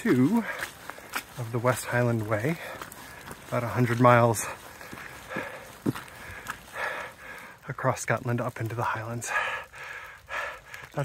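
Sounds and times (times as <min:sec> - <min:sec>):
footsteps on muddy trail: 0:00.0 - 0:11.0.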